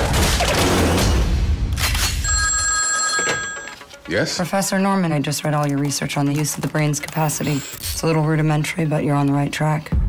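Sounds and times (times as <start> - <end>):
telephone ringing: 2.2 - 4.0.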